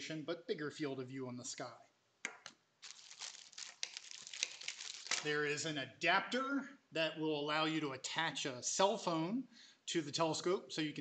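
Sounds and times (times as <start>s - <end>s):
plastic bag crinkling: 2.8s - 5.4s.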